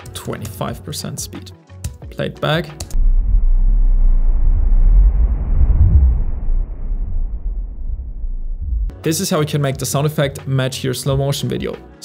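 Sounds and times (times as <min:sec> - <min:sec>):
low rumble: 0:02.9 - 0:08.9.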